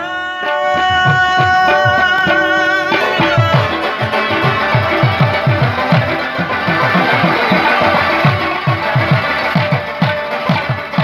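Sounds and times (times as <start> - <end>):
harmonium sustained notes: 0.0 - 11.0
hand drum rhythm: 0.4 - 11.0.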